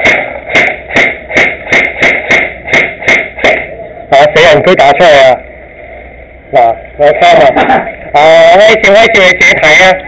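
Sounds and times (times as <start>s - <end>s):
airsoft rifle shots: 0.0s - 3.8s.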